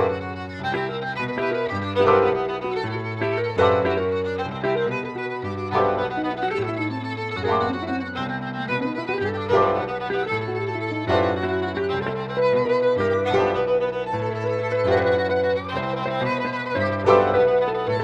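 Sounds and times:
piano chords: 0.0s - 18.0s
violin melody: 0.0s - 18.0s.

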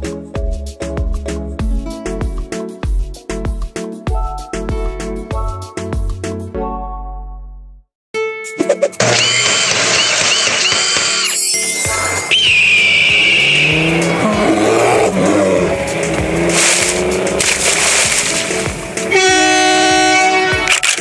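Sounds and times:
cartoon vehicle sound effects: 8.6s - 17.5s
long high squeal: 9.2s - 14.8s
animated intro music: 11.4s - 21.0s.

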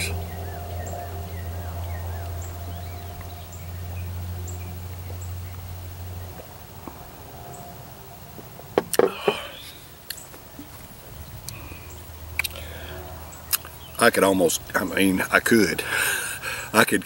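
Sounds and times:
small birds chirping: 0.0s - 17.0s
steady low hum: 0.0s - 17.0s.

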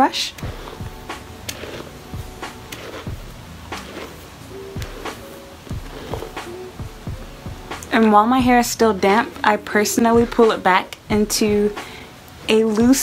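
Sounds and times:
brush strokes through wet hair: 0.4s - 13.0s.

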